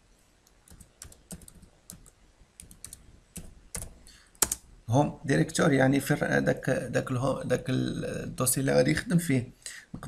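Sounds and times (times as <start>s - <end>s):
typing on computer keyboard: 0.7s - 4.6s.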